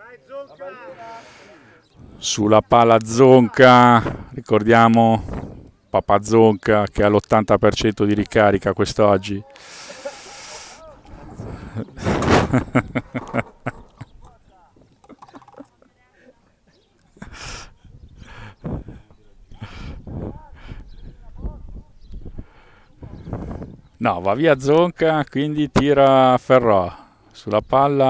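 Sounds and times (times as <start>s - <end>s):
distant voices calling: 0.0s - 25.0s.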